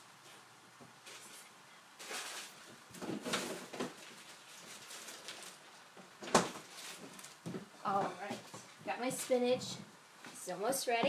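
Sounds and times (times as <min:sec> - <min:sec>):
kitchen rustling and clattering: 0:00.3 - 0:09.9.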